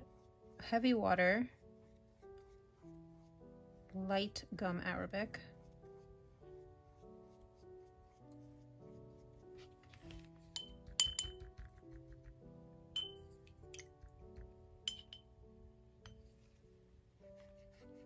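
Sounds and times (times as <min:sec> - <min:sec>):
soft background music: 0:00.0 - 0:18.0
paintbrush clinking against glass: 0:10.1 - 0:11.8, 0:12.9 - 0:15.3.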